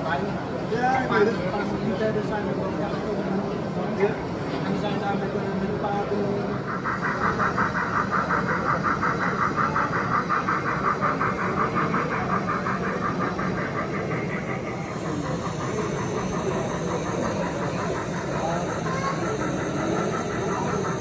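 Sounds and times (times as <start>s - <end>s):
exhibition hall background noise: 0.0s - 21.0s
rapid rhythmic pulsing: 0.0s - 21.0s.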